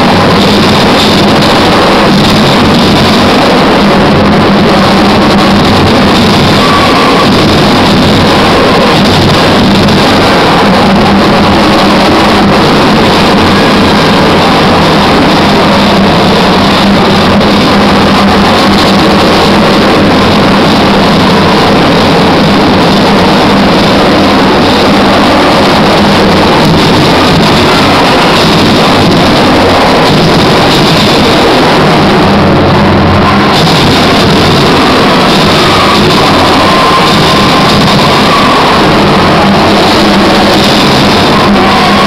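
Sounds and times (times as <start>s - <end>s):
engine drone: 0.0s - 42.0s.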